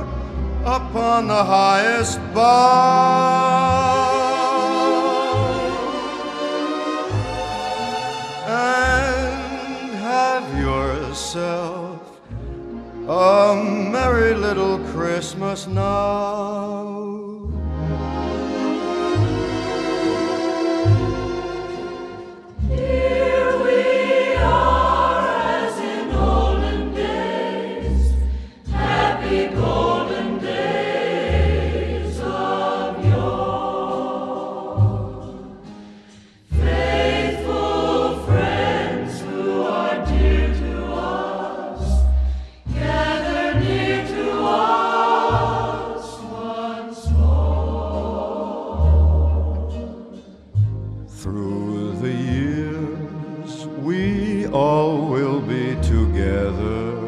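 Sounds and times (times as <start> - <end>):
choir singing: 0.0 - 16.6, 17.7 - 57.0
low bass line: 17.4 - 21.9.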